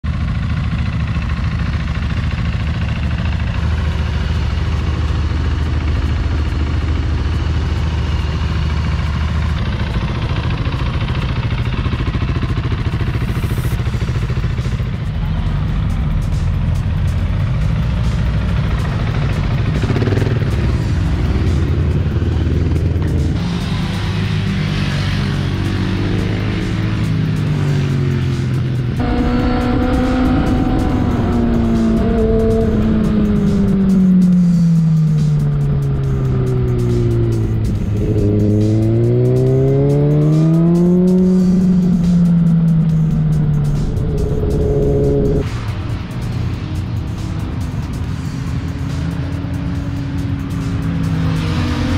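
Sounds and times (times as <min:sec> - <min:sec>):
motorcycle engine: 0:00.0 - 0:51.9
background music: 0:03.5 - 0:51.9.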